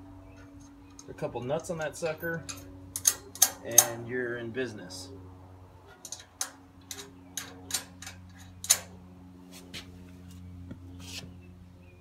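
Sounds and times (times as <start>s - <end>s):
metallic clicks of nuts and washers: 0.4s - 4.0s, 6.0s - 8.9s.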